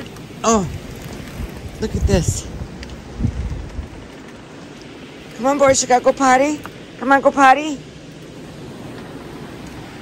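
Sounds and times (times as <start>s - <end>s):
wind buffeting microphone: 0.0s - 7.0s
faint hiss of wind: 0.0s - 10.0s.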